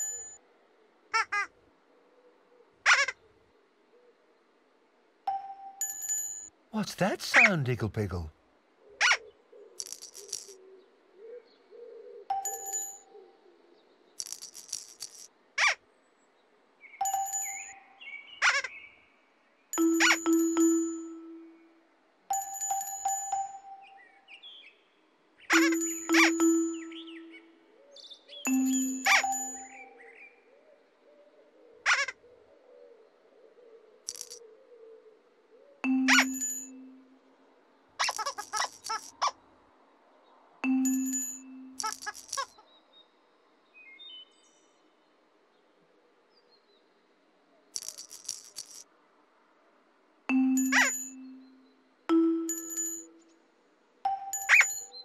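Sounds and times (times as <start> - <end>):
chiming stepping stone notes: 5.3 - 8.3, 12.3 - 13.1, 17.0 - 18.0, 19.8 - 24.2, 25.6 - 27.6, 28.5 - 30.0, 35.8 - 37.2, 40.6 - 42.2, 50.3 - 53.4, 54.1 - 55.0
birds chirping: 6.8 - 8.3, 16.8 - 30.4, 35.8 - 37.1, 50.3 - 53.2, 54.1 - 55.0.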